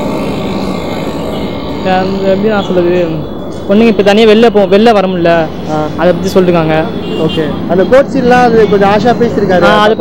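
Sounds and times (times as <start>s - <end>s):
roadside background hum: 0.0s - 10.0s.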